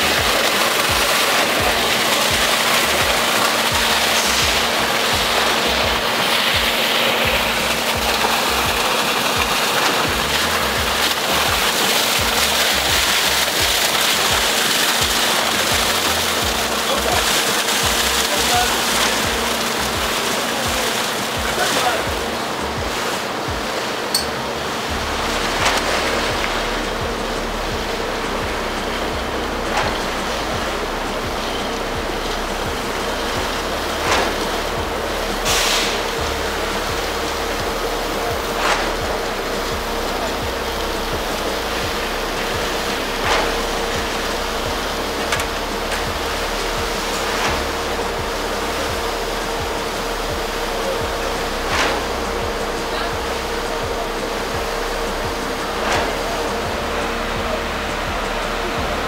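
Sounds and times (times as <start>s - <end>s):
constant rushing noise: 0.0s - 59.0s
machine hum: 0.0s - 59.0s.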